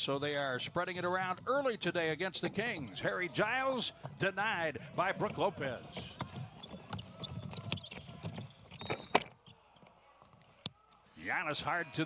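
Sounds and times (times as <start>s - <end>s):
basketball dribbling on hardwood: 5.3s - 9.1s
sneakers squeaking: 5.3s - 11.0s.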